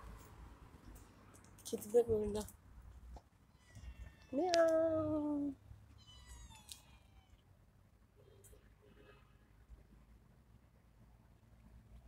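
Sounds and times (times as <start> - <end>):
faint cat meow: 3.6 - 7.4.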